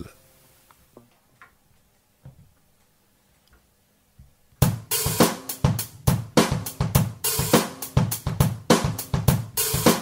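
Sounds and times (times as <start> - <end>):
song with loud drum beat: 4.6 - 10.0.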